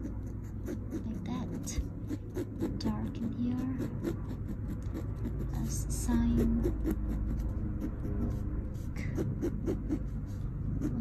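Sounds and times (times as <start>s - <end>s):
low background rumble: 0.0s - 11.0s
pen scratching on canvas: 0.0s - 11.0s.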